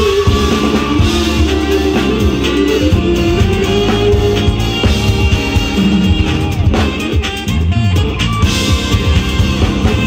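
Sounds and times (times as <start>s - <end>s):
live band playing pop-rock: 0.0s - 10.0s.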